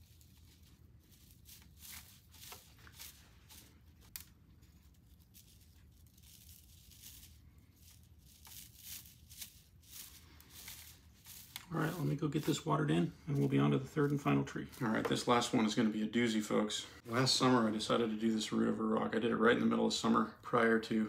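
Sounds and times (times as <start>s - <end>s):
moss crackling and tearing: 0.0s - 15.4s.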